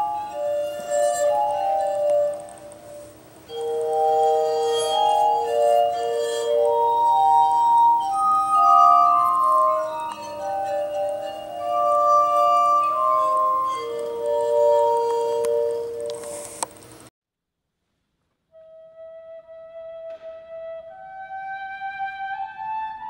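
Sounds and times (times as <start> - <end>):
glass harmonica melody: 0.0 - 16.6.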